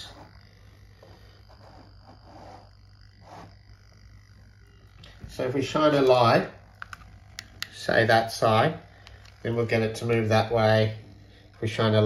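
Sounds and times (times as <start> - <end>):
low steady hum: 0.0 - 12.0
small servos buzzing: 0.0 - 12.0.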